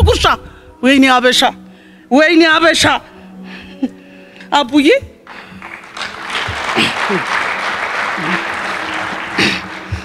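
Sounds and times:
audience applauding: 5.3s - 10.0s.

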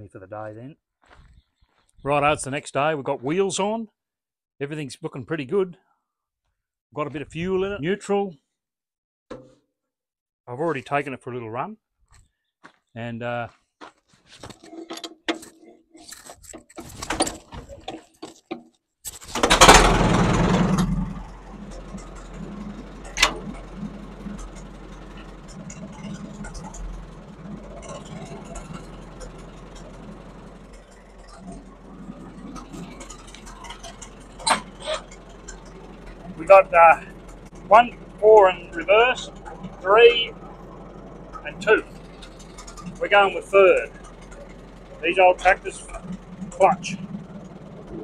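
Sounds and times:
engine clicks and knocks: 16.3s - 48.0s
tractor engine revving and idling: 19.2s - 48.0s.

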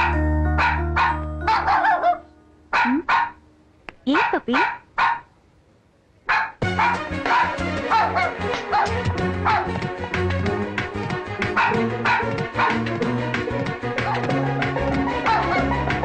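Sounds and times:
small dog barking: 0.0s - 3.4s, 4.1s - 5.3s, 6.3s - 9.7s, 11.6s - 12.8s, 15.2s - 15.7s
background music: 0.0s - 3.7s, 6.6s - 16.0s.

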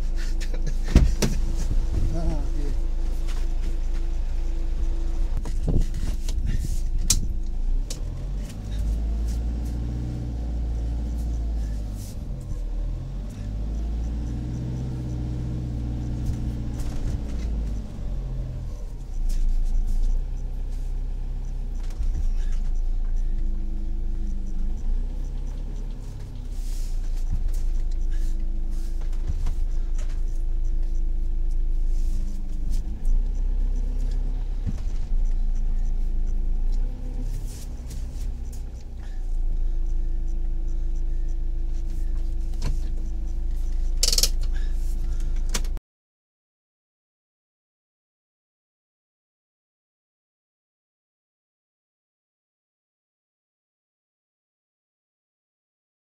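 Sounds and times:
motorhome engine rumbling: 0.0s - 45.8s.

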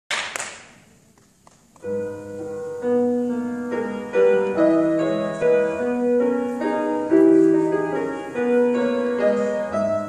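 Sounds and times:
slow classical piano piece: 1.3s - 10.0s.

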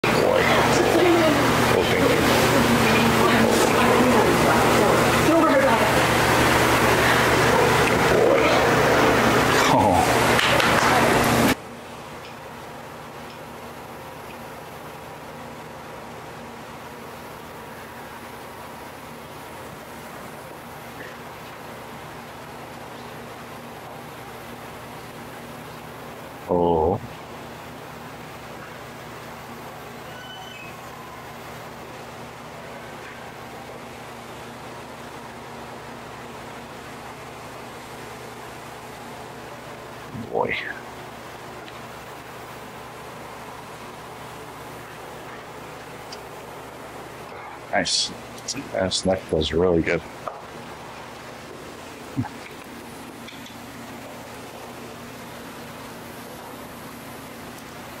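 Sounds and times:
steady background hiss: 0.0s - 58.0s
faint high chirps: 30.0s - 31.4s.

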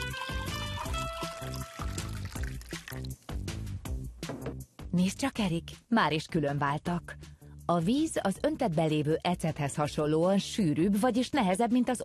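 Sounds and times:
background music with steady beat: 0.0s - 10.2s
oil pouring into water bottle: 0.7s - 3.2s.

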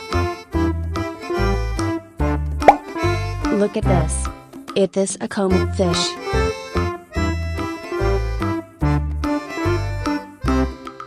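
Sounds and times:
bouncy children's music: 0.0s - 11.0s
short rising plop: 2.6s - 2.9s.

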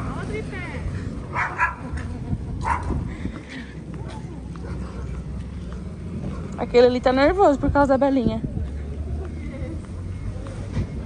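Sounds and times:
street traffic rumble: 0.0s - 11.0s
dog barking: 1.3s - 1.8s, 2.6s - 2.9s.

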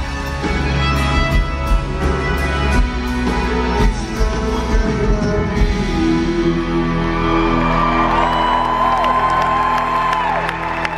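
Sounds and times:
live concert music: 0.0s - 10.9s
crowd whooping and cheering: 6.3s - 10.9s.

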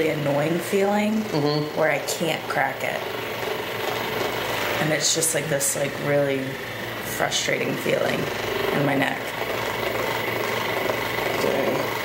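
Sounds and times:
steady machine noise: 0.0s - 12.0s
person saying a word: 1.3s - 1.7s.

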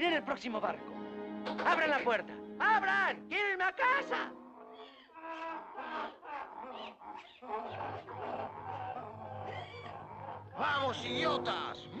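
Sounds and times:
cartoon donkeys braying: 3.8s - 11.2s.

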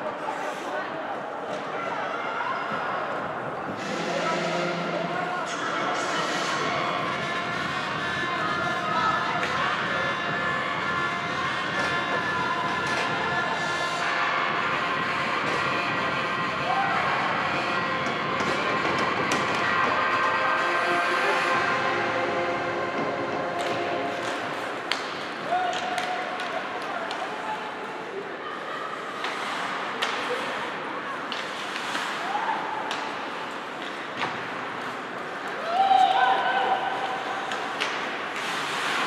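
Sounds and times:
voices: 0.0s - 34.4s
background music: 3.6s - 24.9s.

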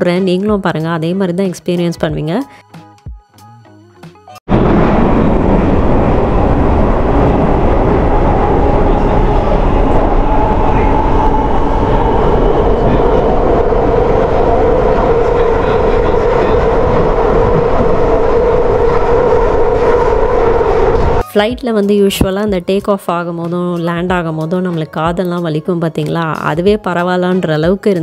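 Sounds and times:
underground train rumbling: 4.5s - 21.2s
train whining tone: 4.5s - 21.3s.

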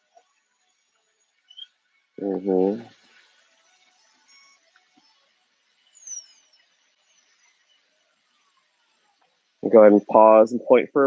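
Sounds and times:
faint high bird chirps: 1.3s - 9.3s
high falling bird chirp: 1.4s - 3.4s, 4.2s - 8.8s.

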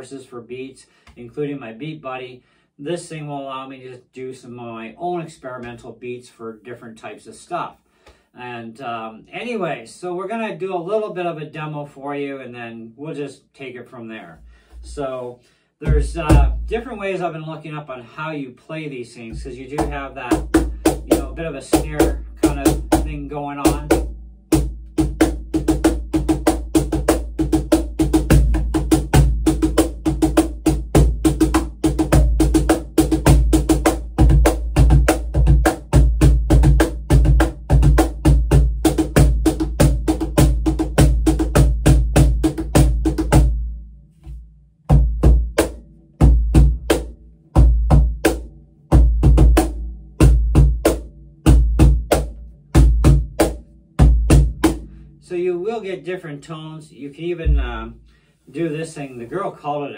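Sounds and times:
cajon played by hand: 19.3s - 43.5s.

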